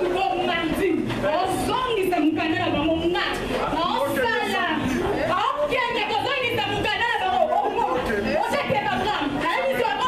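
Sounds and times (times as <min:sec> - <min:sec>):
several people talking: 0:00.0 - 0:10.0.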